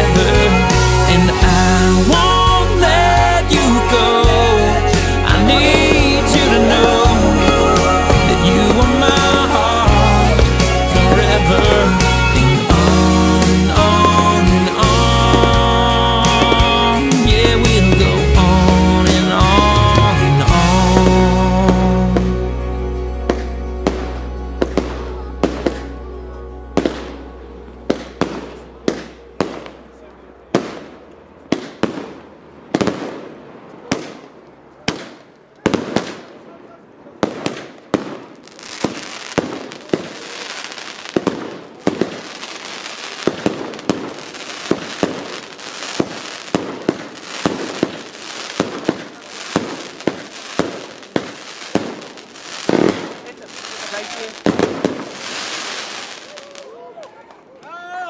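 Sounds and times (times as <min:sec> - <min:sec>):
fireworks bursting: 0:00.0 - 0:57.6
fireworks crackling: 0:00.0 - 0:58.0
low musical note: 0:19.8 - 0:31.4.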